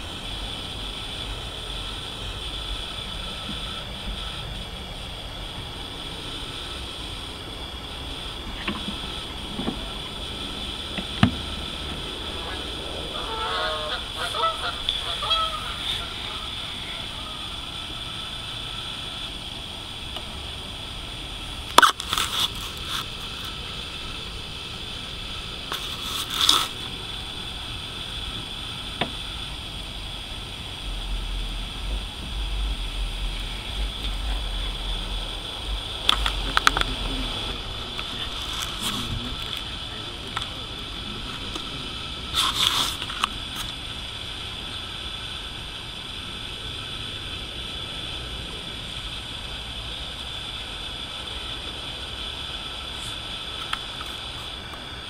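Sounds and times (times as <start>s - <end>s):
pitched calls: 0.0s - 19.6s
steady high-pitched hiss: 0.0s - 55.0s.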